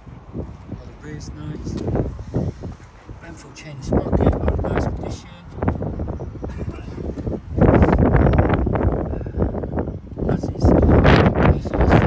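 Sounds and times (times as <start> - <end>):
wind rumbling on microphone: 0.0 - 12.0.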